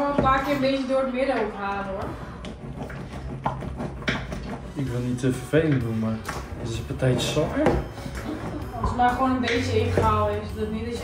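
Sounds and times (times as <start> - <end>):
utensil scraping cream in bowl: 0.0 - 11.0.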